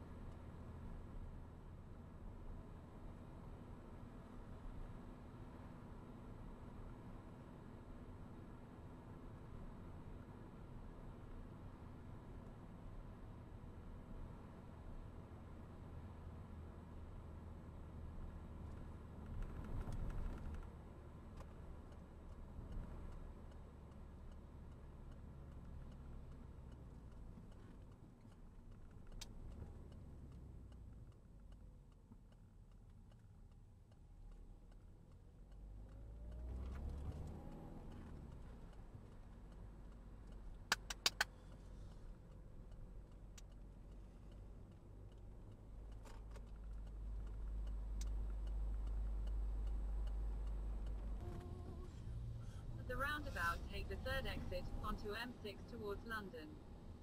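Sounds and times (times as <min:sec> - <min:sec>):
car road and engine rumble: 0:00.0 - 0:57.0
sharp clicks: 0:40.2 - 0:41.6.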